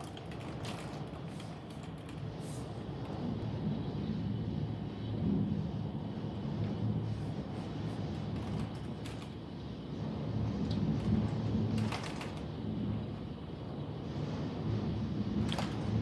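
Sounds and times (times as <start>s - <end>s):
heavy rain and wind: 0.0s - 16.0s.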